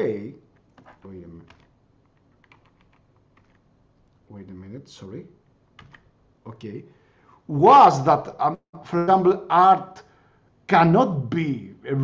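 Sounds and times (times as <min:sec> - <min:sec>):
keyboard typing: 0:00.5 - 0:03.7, 0:05.8 - 0:06.1.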